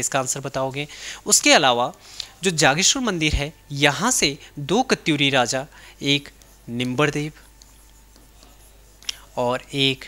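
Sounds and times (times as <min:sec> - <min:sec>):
man speaking: 0:00.0 - 0:07.4, 0:08.4 - 0:10.0
stylus scratching and tapping on screen: 0:00.0 - 0:10.0.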